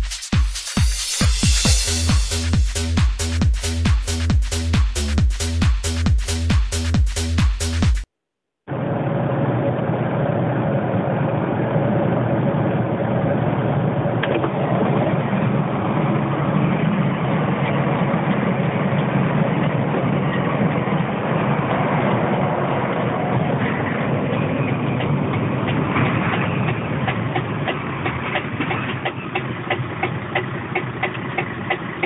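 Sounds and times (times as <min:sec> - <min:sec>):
lorry engine and road noise: 0:08.7 - 0:32.0.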